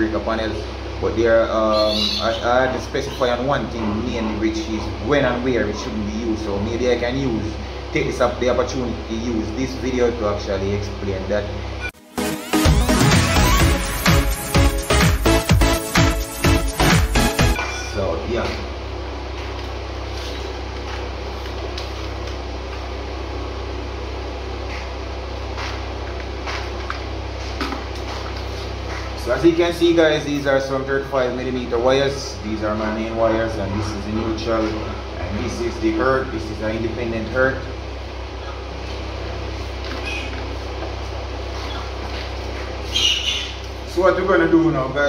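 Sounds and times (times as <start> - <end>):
steady low hum: 0.0 - 12.0, 13.8 - 45.0
farm animals: 1.7 - 5.0, 33.1 - 35.1, 39.9 - 40.6, 41.6 - 43.8
short high-pitched animal call: 1.8 - 2.5.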